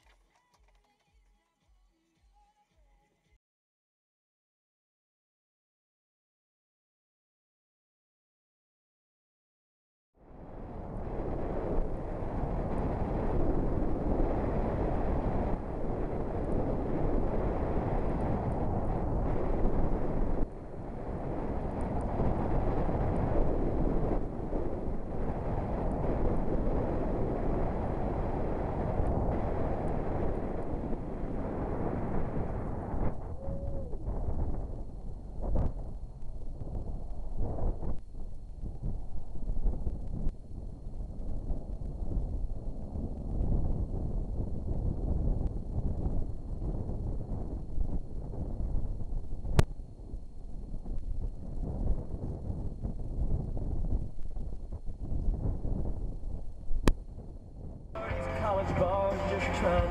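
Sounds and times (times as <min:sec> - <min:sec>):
wind and road noise in car: 0:10.3 - 0:59.9.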